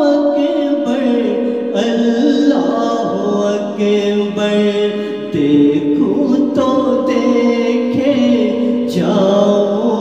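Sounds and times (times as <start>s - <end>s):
a cappella devotional singing: 0.0s - 10.0s.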